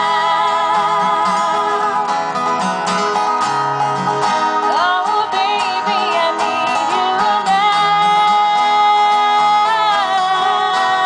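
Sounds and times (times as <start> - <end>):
person singing: 0.0 - 2.3, 4.6 - 11.0
acoustic guitars strumming: 0.0 - 11.0
country-pop band playing: 0.0 - 11.0.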